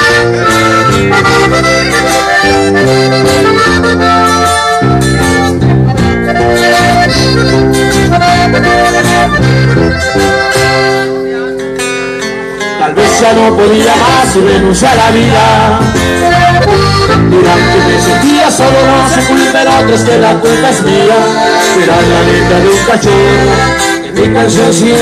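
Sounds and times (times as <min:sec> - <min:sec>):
button accordion melody: 0:00.0 - 0:25.0
strummed acoustic guitar: 0:00.0 - 0:25.0
walking bass line: 0:00.0 - 0:25.0.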